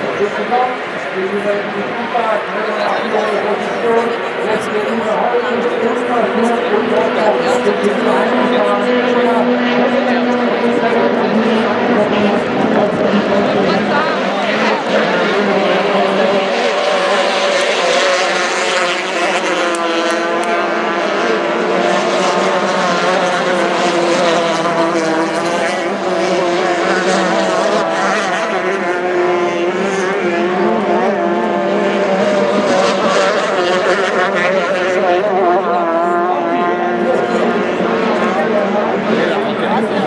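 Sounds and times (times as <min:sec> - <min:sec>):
powerboat engines racing: 0:00.0 - 0:40.0.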